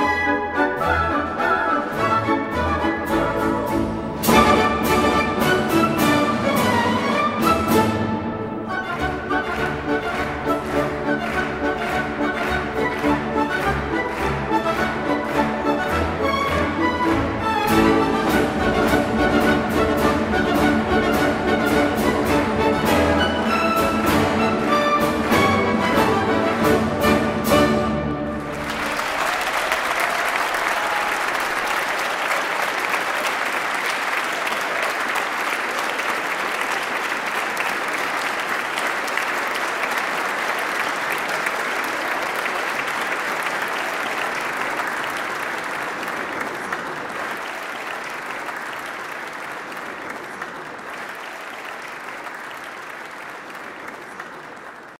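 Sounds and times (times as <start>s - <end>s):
large audience applauding: 4.2s - 55.0s.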